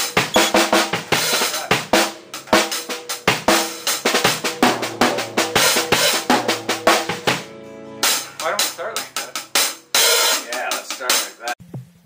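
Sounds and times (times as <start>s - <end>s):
band playing: 0.0s - 11.6s
drum kit with cymbal and snare: 0.0s - 12.0s.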